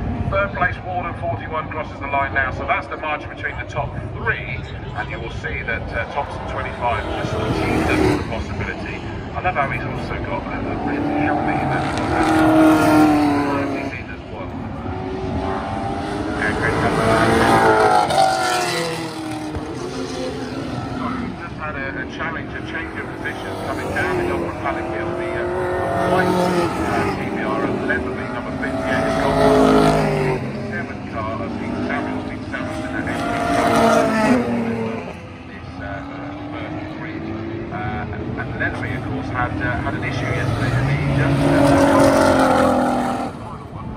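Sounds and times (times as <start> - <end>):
race car engines passing: 0.0 - 43.9.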